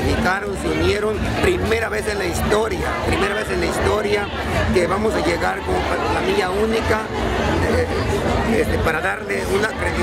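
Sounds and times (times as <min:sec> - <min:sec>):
crowd chatter: 0:00.0 - 0:10.0
man talking: 0:00.0 - 0:10.0.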